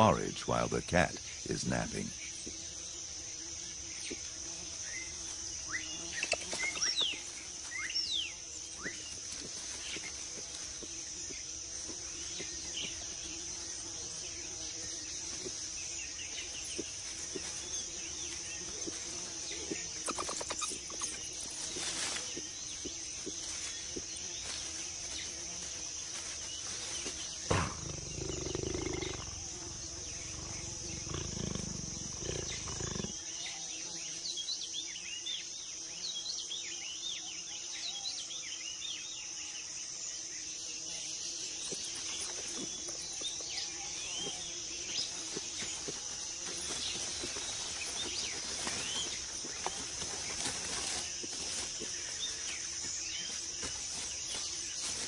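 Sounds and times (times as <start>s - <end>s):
high insect drone: 0.0s - 55.0s
low animal growl: 27.5s - 33.2s.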